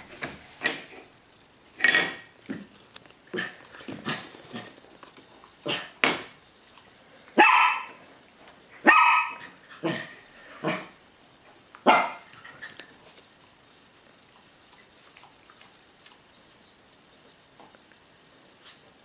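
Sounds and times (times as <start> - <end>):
dog barking: 7.4 - 8.0, 8.8 - 10.0, 11.8 - 12.2.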